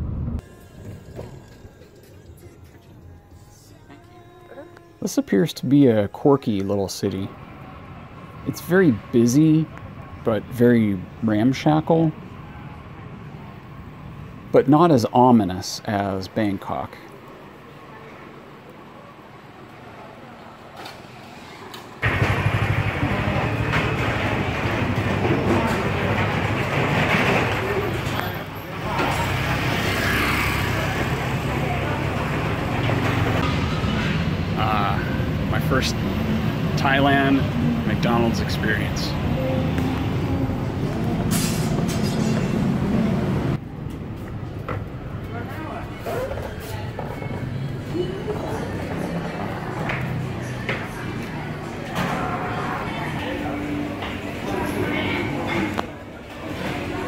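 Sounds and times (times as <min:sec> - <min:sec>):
street traffic: 0:00.0 - 0:57.0
indistinct voices: 0:22.0 - 0:43.6, 0:45.2 - 0:57.0.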